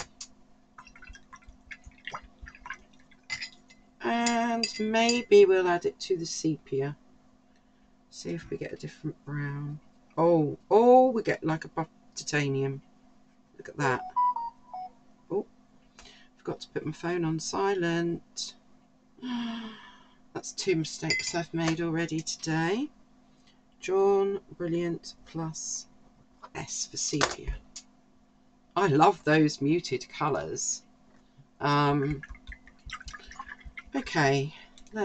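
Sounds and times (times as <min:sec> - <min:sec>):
water splashing and dripping: 0:00.8 - 0:03.3, 0:32.1 - 0:34.0
brush clinking against glass: 0:03.2 - 0:05.3, 0:21.1 - 0:21.4
phone alert tone beeps: 0:14.0 - 0:14.9.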